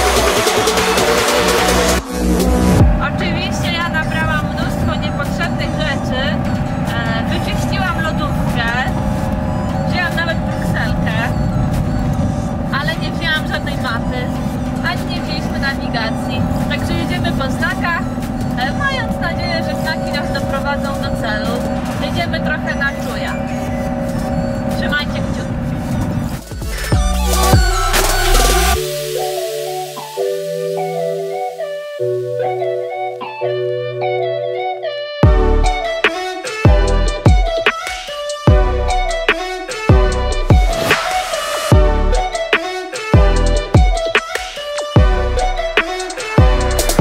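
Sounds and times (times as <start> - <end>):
engine and road rumble: 0.0 - 29.0, 35.2 - 37.7, 38.5 - 42.6, 45.0 - 47.0
voices talking: 2.8 - 11.8, 12.4 - 28.8.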